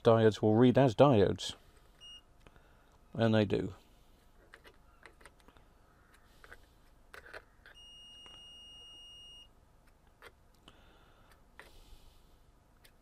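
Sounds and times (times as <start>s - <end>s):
multimeter high beep: 2.0s - 2.3s, 7.8s - 9.5s.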